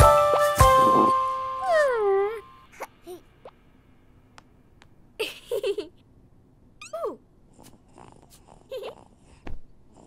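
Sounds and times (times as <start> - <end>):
squeaky cartoon vocal calls: 6.8 - 7.2.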